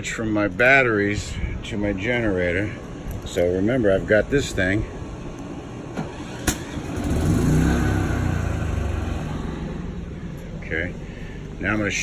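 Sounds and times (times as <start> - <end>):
generator engine starting and running: 0.0 - 12.0.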